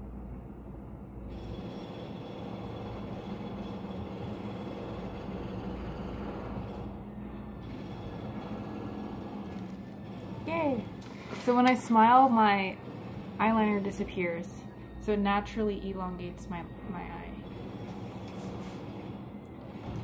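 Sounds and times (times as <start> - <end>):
steady rumbling noise: 0.0 - 20.0
faint music: 6.7 - 20.0.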